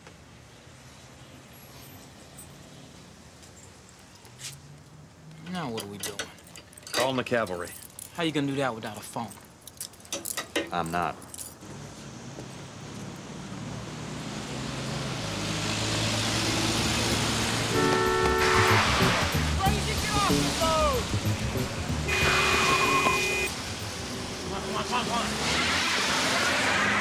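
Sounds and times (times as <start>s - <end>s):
car engines passing: 0.3s - 6.4s, 10.8s - 27.0s
tyres on wet road: 10.1s - 27.0s
car horn honking: 17.6s - 21.0s, 22.0s - 23.6s.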